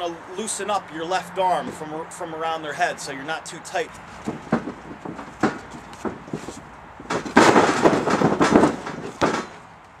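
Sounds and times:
bodies crashing onto mat: 7.1s - 9.6s.

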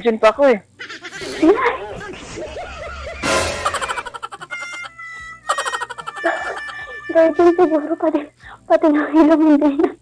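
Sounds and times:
people giggling: 0.8s - 8.3s
woman laughing: 0.8s - 8.3s.

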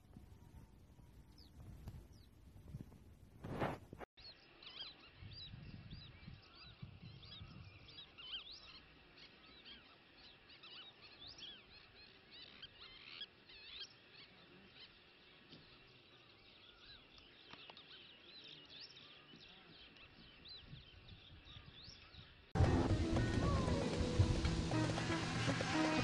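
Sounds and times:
flock of birds chirping: 4.2s - 26.0s
brief loud rush of noise: 22.6s - 26.0s.

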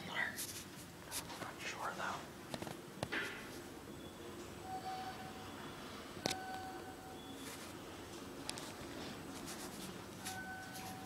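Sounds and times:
person whispering: 0.0s - 0.5s, 1.3s - 2.3s.

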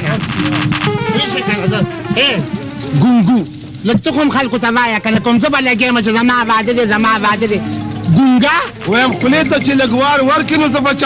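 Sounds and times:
man vocalizing without words: 2.9s - 3.5s.

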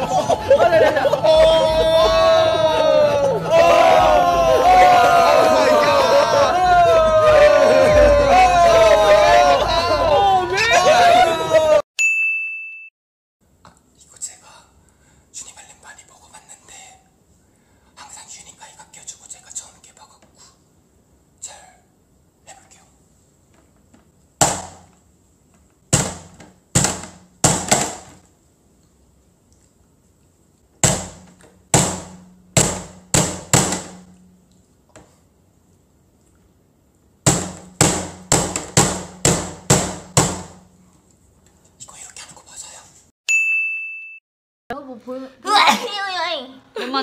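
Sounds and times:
bright ding chime: 12.0s - 12.9s, 43.3s - 44.2s
soft whispering: 13.9s - 17.2s, 17.9s - 20.7s, 21.4s - 23.1s, 41.6s - 43.1s.

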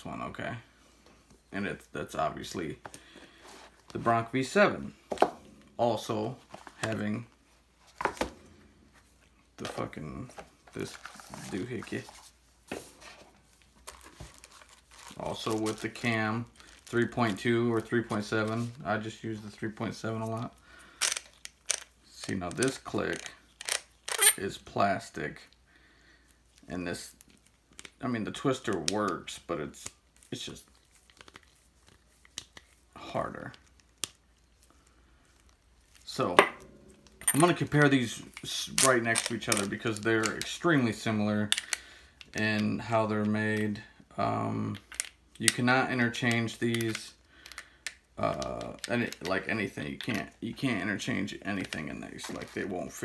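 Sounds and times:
faint handling noises: 2.4s - 24.4s, 26.5s - 43.9s, 44.6s - 53.0s.

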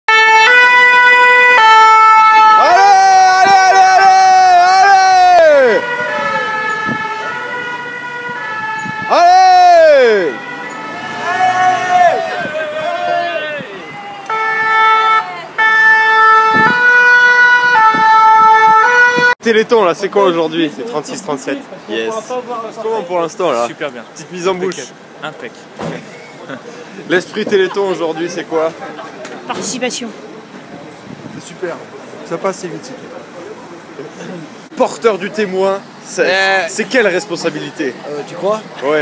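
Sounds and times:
two-tone emergency siren: 0.1s - 19.4s.

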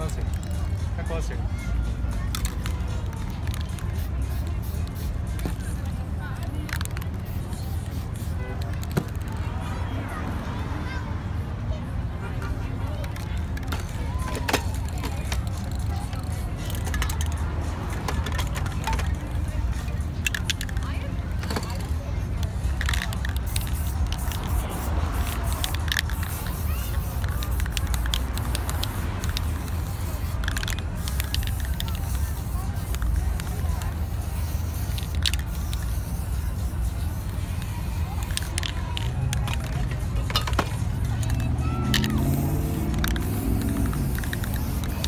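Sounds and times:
low street rumble: 0.0s - 45.0s
spray can hissing: 2.3s - 9.4s, 13.0s - 45.0s.

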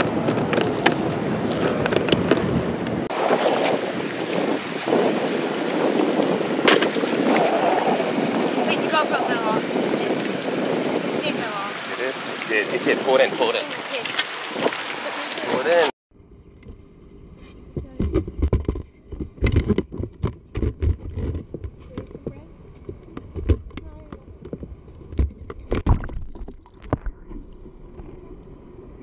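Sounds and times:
wind: 0.0s - 29.0s
voice: 8.7s - 10.1s, 11.2s - 14.2s, 15.0s - 15.9s, 17.8s - 18.1s, 21.8s - 22.5s, 23.8s - 24.3s.

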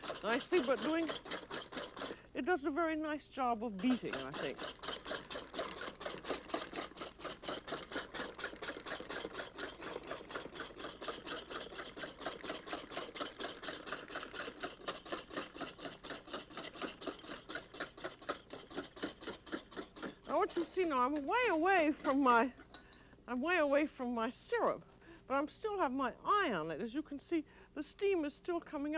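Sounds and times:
whisk beating cream in metal bowl: 0.0s - 2.3s, 3.8s - 22.9s.

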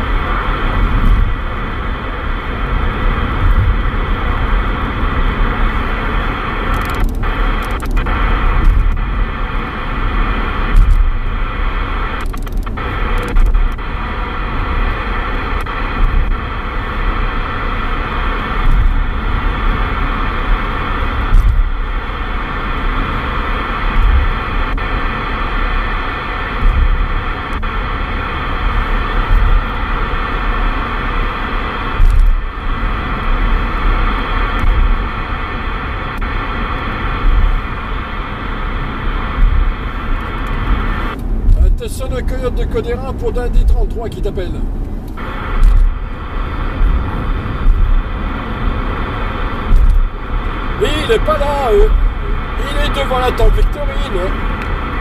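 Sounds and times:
car rumble on road: 0.0s - 55.0s
radio static hiss: 0.0s - 55.0s.

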